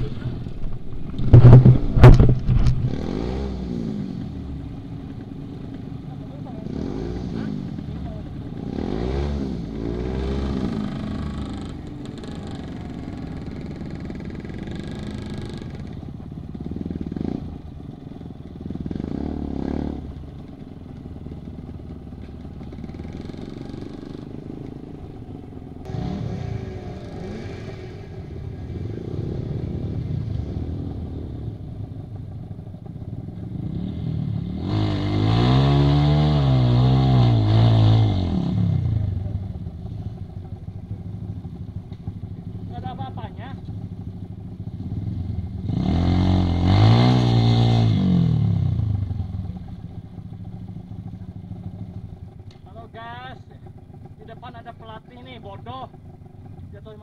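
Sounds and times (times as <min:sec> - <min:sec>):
motorcycle engines revving: 0:00.0 - 0:57.0.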